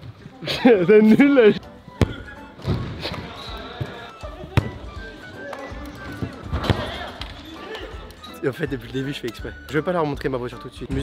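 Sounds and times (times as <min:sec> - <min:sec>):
background music: 0:00.0 - 0:11.0
football kicks: 0:01.9 - 0:04.9, 0:06.1 - 0:07.4.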